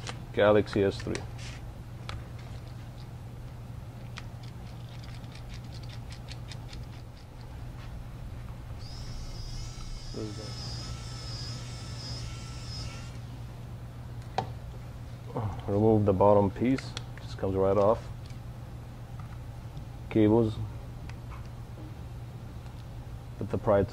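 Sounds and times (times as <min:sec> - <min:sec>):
steady low hum: 0:00.0 - 0:23.9
high wavering whistle tone: 0:08.8 - 0:13.2.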